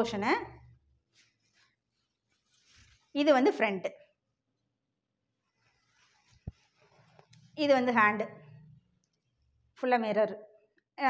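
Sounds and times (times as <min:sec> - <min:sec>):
woman speaking: 0:00.0 - 0:00.7, 0:03.2 - 0:04.0, 0:07.5 - 0:08.5, 0:09.8 - 0:10.4.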